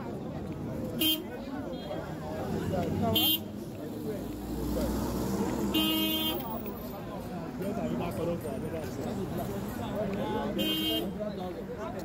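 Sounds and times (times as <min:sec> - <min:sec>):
chatter of many voices: 0:00.0 - 0:12.0
vehicle horn toot: 0:05.7 - 0:06.4, 0:10.6 - 0:11.1.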